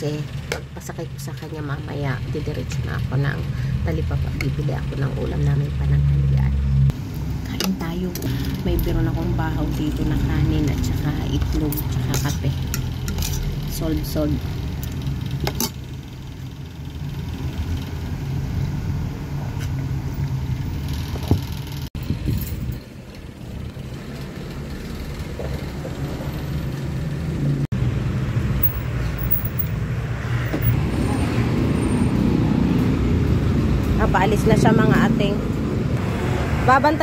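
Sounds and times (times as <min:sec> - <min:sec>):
road traffic noise: 0:00.0 - 0:37.0.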